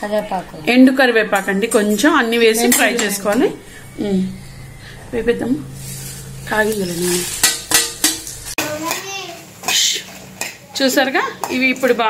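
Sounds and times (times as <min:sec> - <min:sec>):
chillies sizzling in hot oil: 0:05.7 - 0:12.0.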